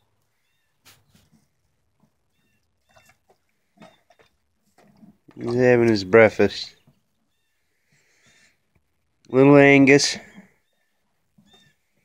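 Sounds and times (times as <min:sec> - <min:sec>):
calf slurping milk from bucket: 0:03.0 - 0:06.0.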